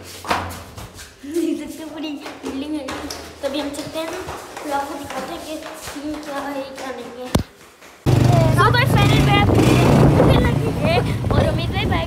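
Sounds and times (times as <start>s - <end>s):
loud children's voices: 8.1s - 12.0s.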